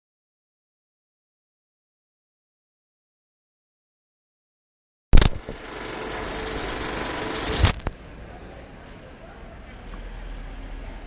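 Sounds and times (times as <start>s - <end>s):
steady mechanical noise: 5.2s - 8.3s.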